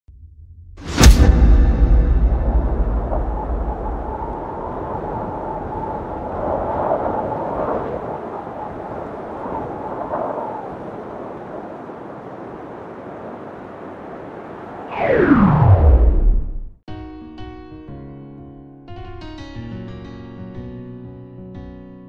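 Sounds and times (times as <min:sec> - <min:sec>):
wind-like wash of noise: 0:00.9 - 0:16.7.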